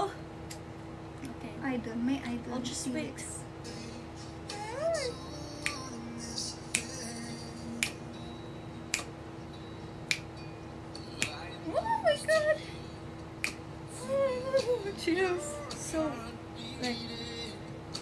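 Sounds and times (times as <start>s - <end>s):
quiet background song: 2.0s - 18.0s
person humming or singing: 3.6s - 8.0s, 13.9s - 17.7s
fingers snapping: 5.6s - 5.9s, 6.7s - 7.0s, 7.8s - 8.0s, 8.9s - 9.1s, 10.1s - 10.3s, 11.2s - 11.4s, 13.4s - 13.6s.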